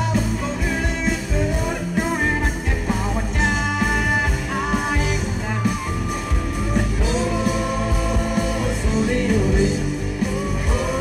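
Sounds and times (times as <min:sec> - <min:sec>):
live band music: 0:00.0 - 0:11.0
man singing: 0:00.0 - 0:11.0.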